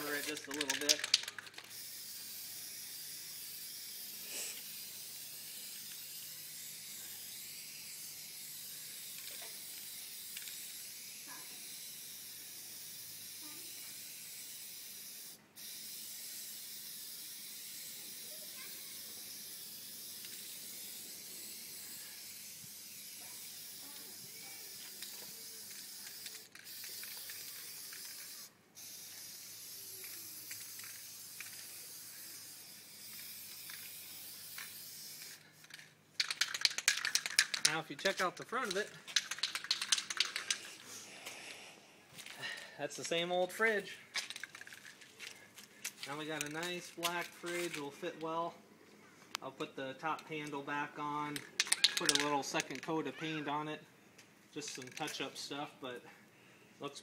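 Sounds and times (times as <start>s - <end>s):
aerosol spray can hissing: 0.0s - 37.7s, 39.1s - 41.8s.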